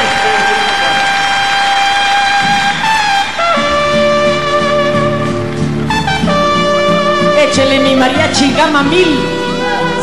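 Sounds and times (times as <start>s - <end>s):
audience applause: 0.0s - 5.8s
orchestra holding brass note: 0.0s - 7.6s, 9.1s - 10.0s.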